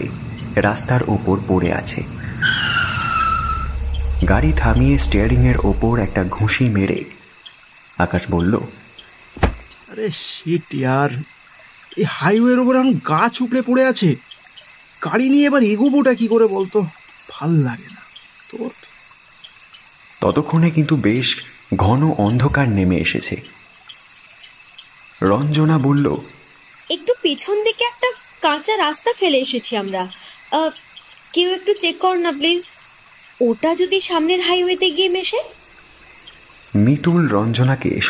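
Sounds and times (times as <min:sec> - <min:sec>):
insects chirring: 0:00.0 - 0:38.0
tyres screeching: 0:02.2 - 0:06.7
low rumble: 0:02.8 - 0:07.0
short low sound: 0:03.4 - 0:06.8.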